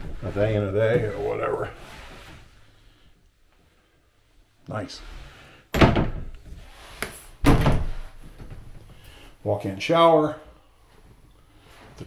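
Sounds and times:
door thuds: 5.7s - 6.3s, 7.4s - 8.0s.

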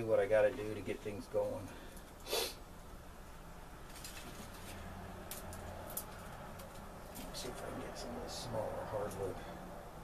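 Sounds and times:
low steady hum: 0.0s - 10.0s
small fire crackling: 0.6s - 8.2s.

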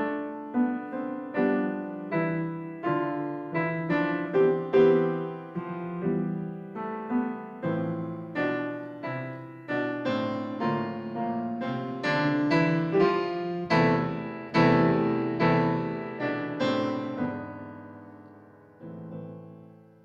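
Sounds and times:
grand piano chords: 0.0s - 20.0s.

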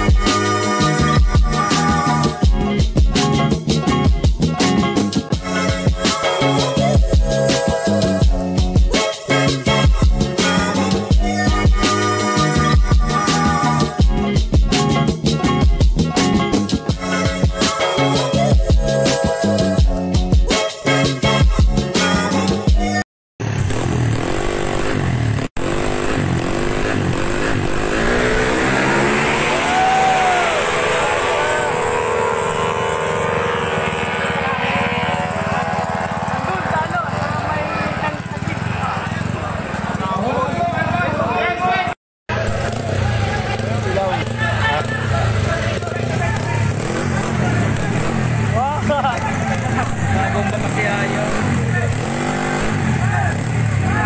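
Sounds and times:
racing scooter engines: 0.0s - 19.8s, 23.4s - 54.0s
crowd chattering and shouting: 28.8s - 54.0s.

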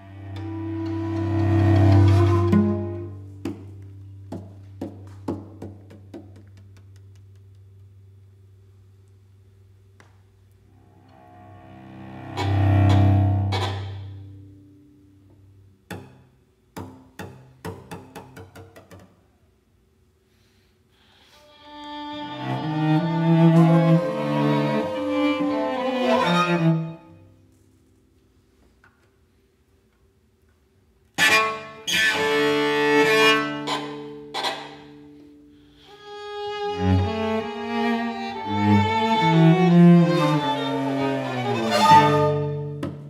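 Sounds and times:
cello low bowed note: 0.0s - 3.9s, 10.7s - 15.0s, 21.7s - 27.3s, 36.4s - 43.0s
violin bowed notes: 0.0s - 4.2s, 10.7s - 14.8s, 21.3s - 27.5s, 31.1s - 43.0s
sharp wooden percussion taps: 3.4s - 7.6s, 16.8s - 19.2s.

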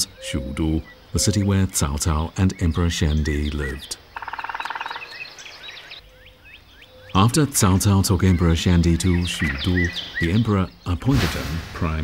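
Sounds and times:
small birds chirping: 0.0s - 12.0s
frog pulsed trill: 4.2s - 5.0s.

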